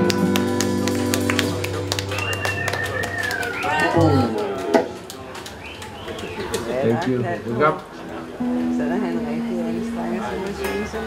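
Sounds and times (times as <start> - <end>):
soft voices talking: 1.3 - 11.0.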